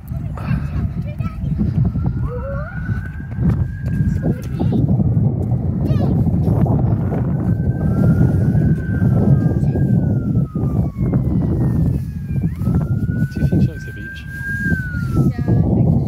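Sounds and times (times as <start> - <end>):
wind buffeting microphone: 0.0 - 16.0
faint wailing siren-like tone: 0.4 - 16.0.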